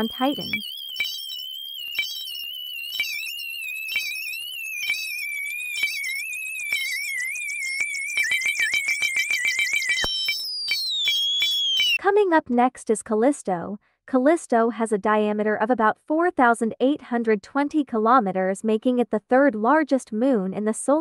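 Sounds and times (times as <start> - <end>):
higher tone gliding downward: 0.0 - 12.0
wavering electronic tone: 0.0 - 12.0.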